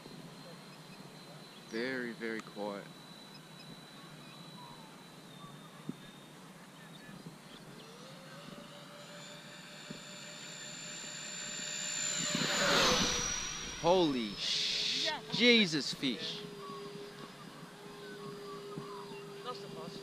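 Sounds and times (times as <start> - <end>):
electric ducted fan jet whining: 0.0 - 20.0.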